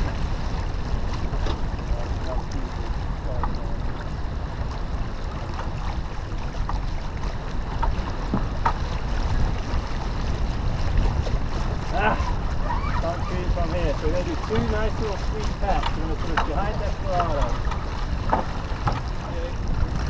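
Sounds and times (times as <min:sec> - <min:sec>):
water rushing along a hull: 0:00.0 - 0:20.0
wind rumble on microphone: 0:00.0 - 0:20.0.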